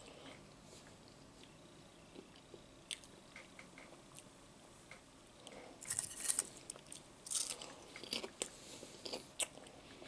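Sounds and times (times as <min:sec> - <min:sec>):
man chewing: 0:05.4 - 0:10.0.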